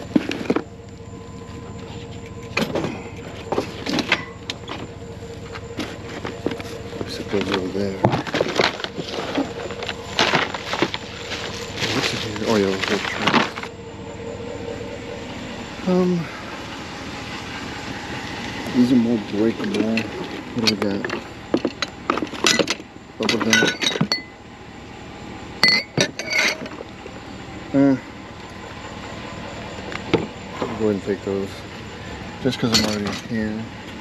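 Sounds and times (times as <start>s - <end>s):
drinking glasses clinking: 23.5s - 24.3s, 25.6s - 26.7s.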